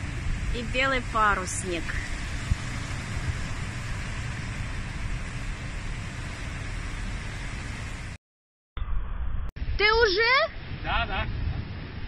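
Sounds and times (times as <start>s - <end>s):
waves washing on shore: 0.0s - 8.2s
wind rumble on microphone: 0.0s - 8.2s, 9.0s - 12.0s.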